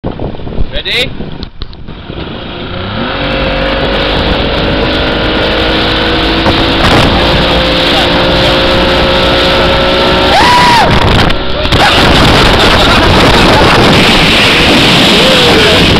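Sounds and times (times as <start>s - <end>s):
rush of wind and water: 0.0s - 15.9s
boat engine throttling up: 1.8s - 15.9s.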